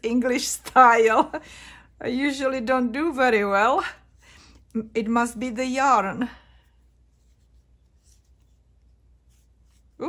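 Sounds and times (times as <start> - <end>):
faint yarn rustling on knitting needles: 4.0 - 10.0.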